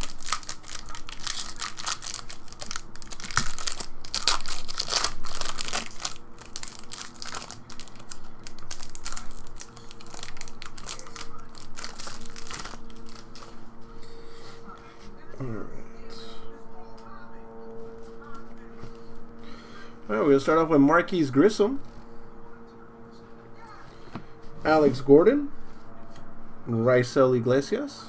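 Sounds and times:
foil wrapper crinkling and tearing: 0.0s - 13.7s.

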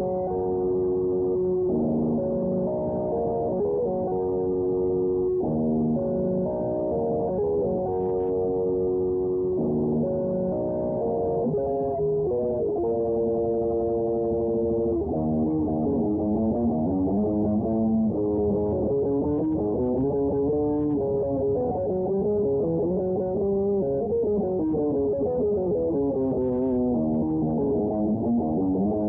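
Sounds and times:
electric guitar lead: 0.0s - 29.0s.

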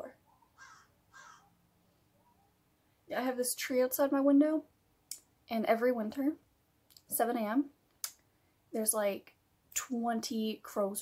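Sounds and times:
faint crow caws: 0.4s - 1.6s.

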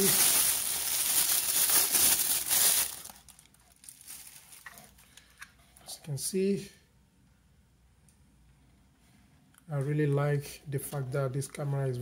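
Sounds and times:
plastic wrapping crinkling: 0.0s - 5.3s.

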